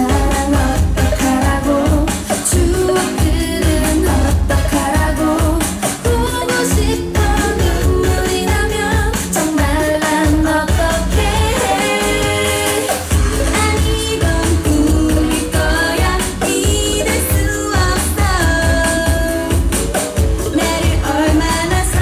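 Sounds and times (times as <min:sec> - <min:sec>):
female group vocals: 0:00.0 - 0:22.0
upbeat pop dance song: 0:00.0 - 0:22.0.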